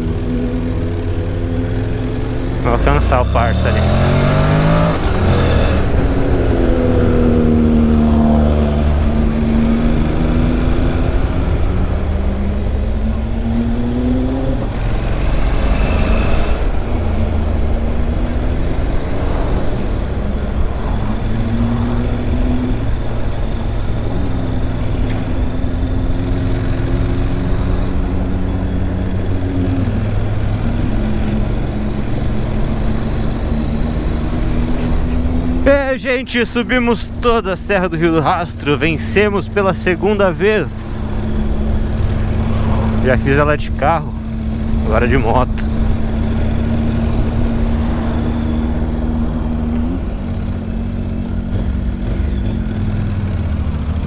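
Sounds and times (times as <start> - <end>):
motorcycle engine revving: 0.0 - 36.0, 37.0 - 54.0.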